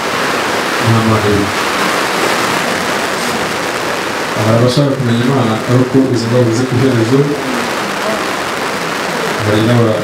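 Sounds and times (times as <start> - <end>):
rushing hiss: 0.0 - 10.0.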